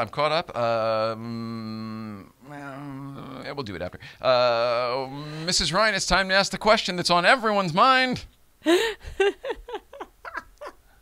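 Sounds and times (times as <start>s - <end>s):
woman laughing: 8.7s - 10.9s.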